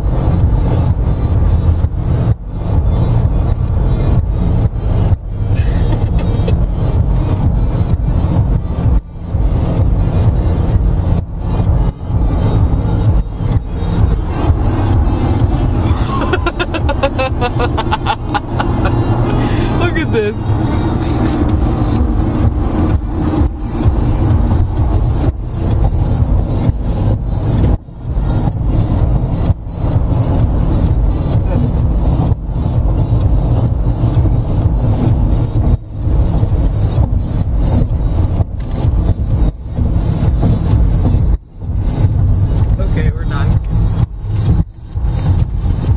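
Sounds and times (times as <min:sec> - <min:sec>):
bass-heavy music on car stereo: 0:00.0 - 0:45.9
car road noise: 0:00.0 - 0:45.9.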